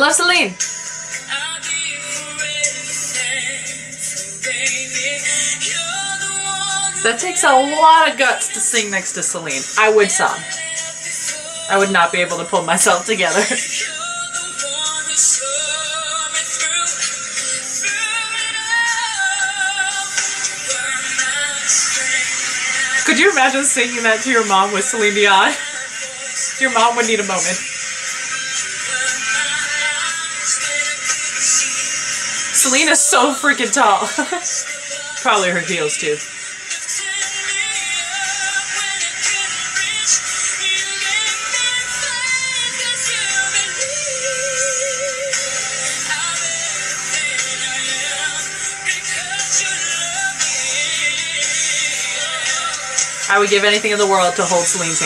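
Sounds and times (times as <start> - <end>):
backing music: 0.0 - 55.0
woman singing a ballad: 0.0 - 55.0.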